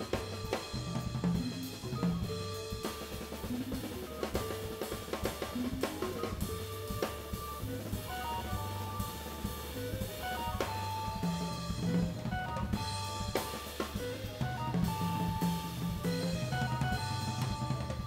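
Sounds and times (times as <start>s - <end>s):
drum kit cymbal and snare: 0.0s - 18.0s
electric guitar: 0.0s - 18.0s
organ bass line and chords: 0.0s - 18.0s.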